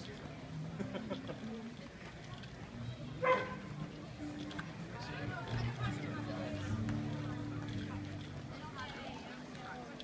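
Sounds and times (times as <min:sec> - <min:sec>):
murmur of street crowd: 0:00.0 - 0:10.0
dog bark: 0:03.2 - 0:03.6.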